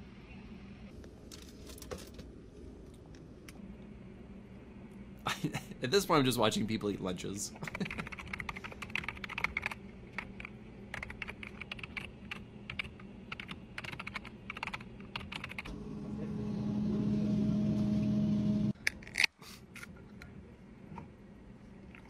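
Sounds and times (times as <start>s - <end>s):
steady hum: 0.0s - 18.8s
keyboard typing: 7.7s - 15.7s.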